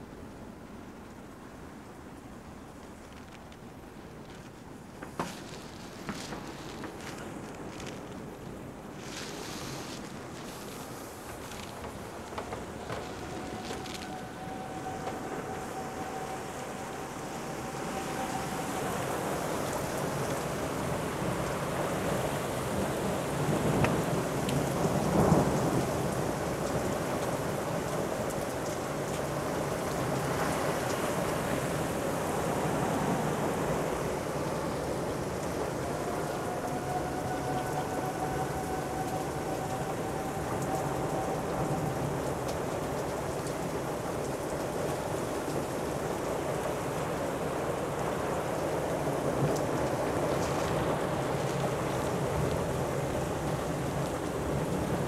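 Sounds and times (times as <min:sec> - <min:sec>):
heavy rain: 0:00.0 - 0:55.0
wind: 0:00.0 - 0:55.0.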